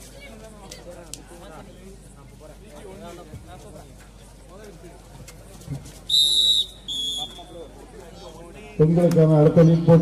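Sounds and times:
referee's whistle blasts: 6.1 - 7.5.

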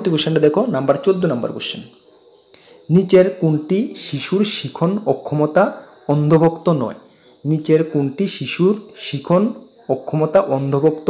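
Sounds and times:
man reading aloud: 0.0 - 2.0, 2.9 - 11.0.

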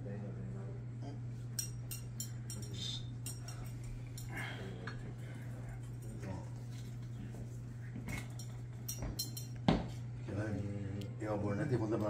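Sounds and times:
glass bottles and dishes clinking: 8.1 - 9.6.

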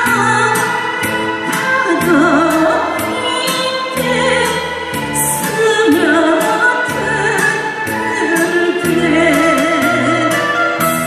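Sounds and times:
amplified backing music: 0.0 - 11.0
woman singing through a microphone: 0.0 - 11.0.

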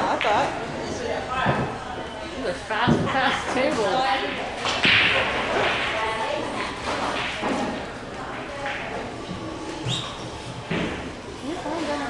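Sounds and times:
people talking: 11.3 - 12.0.

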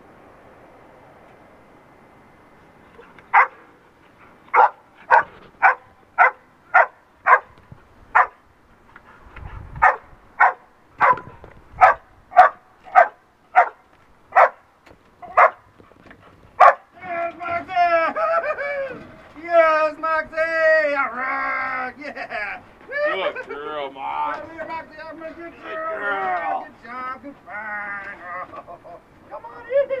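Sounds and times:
dog barking sharply: 3.0 - 3.7, 4.5 - 7.6, 8.2 - 8.4, 9.8 - 14.6, 15.2 - 15.7, 16.6 - 16.9.

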